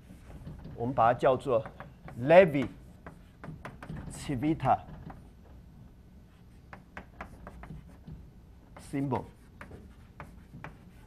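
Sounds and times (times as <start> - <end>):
chalk scratching on blackboard: 1.6 - 3.8, 6.3 - 8.1, 8.7 - 11.0.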